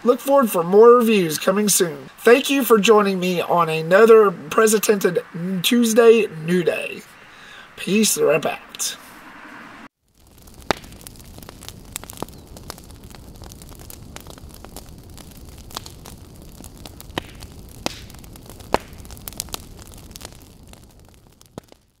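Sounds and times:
fire crackling and popping: 0.0 - 8.9, 9.8 - 22.0
fire rumbling: 0.0 - 22.0.

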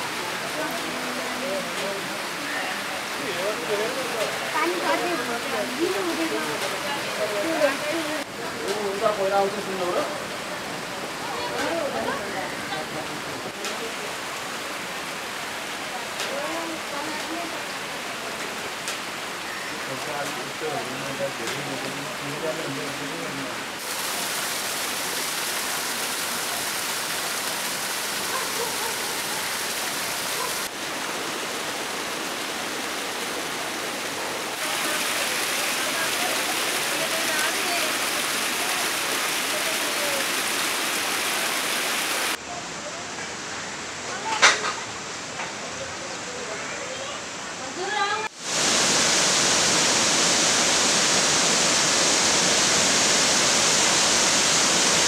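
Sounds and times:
steady rain falling: 0.0 - 55.0
raindrops ticking close by: 13.5 - 14.0, 21.2 - 22.5.

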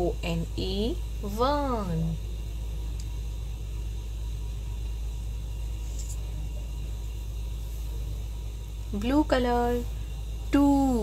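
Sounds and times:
low hum and hiss: 0.0 - 11.0.

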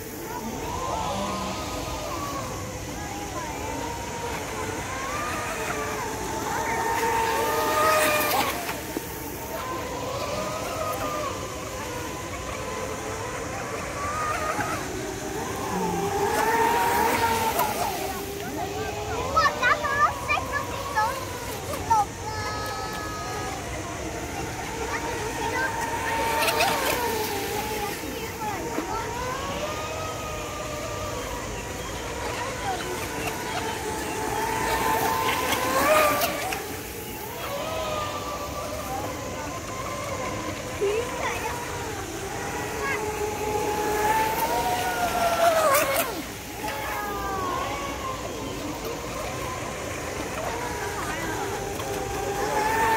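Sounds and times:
model boat motor whining: 0.0 - 52.9.

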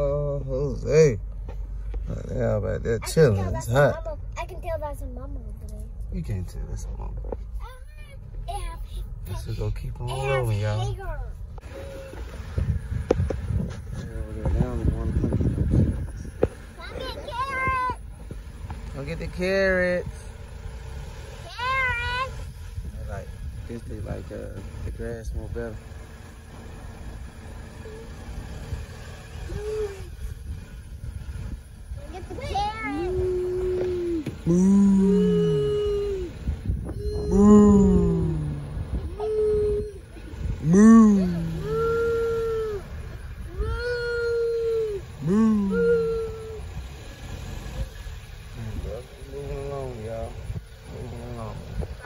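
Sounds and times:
slow-moving car rumble: 0.0 - 52.0
wordless vocal calls: 32.9 - 46.8.

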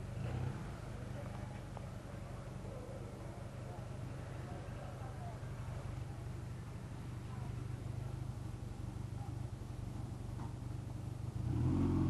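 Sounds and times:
motorcycle engine idling and revving: 0.0 - 12.0.

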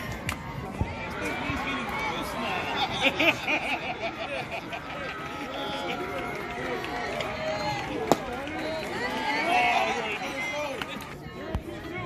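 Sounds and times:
voices shouting and cheering: 0.0 - 12.0.

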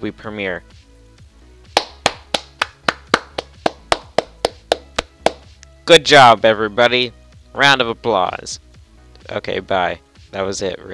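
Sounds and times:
person clapping hands: 1.7 - 5.5.

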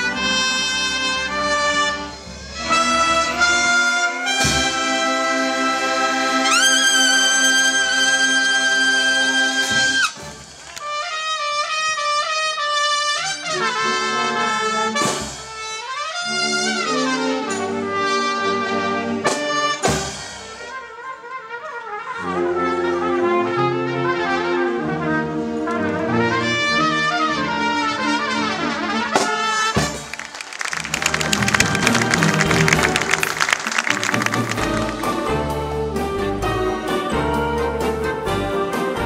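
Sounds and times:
solo trumpet playing: 0.0 - 19.0
wind band accompaniment: 0.0 - 39.0.

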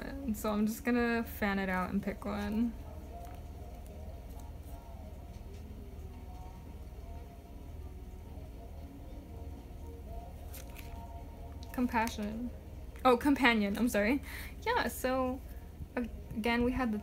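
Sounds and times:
soft background music: 0.0 - 17.0
cards rustling: 10.4 - 12.2.

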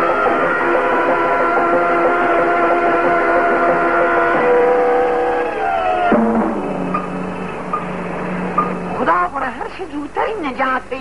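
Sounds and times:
steady low hum: 0.0 - 10.5
film soundtrack hiss: 0.0 - 11.0.

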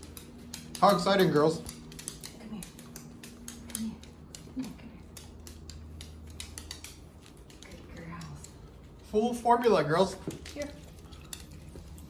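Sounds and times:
dog claws clicking on wood floor: 0.0 - 12.0.

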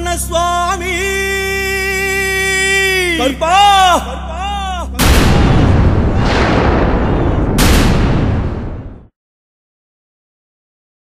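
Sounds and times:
man chanting: 0.0 - 5.0
explosive blast and rumble: 5.0 - 9.1.

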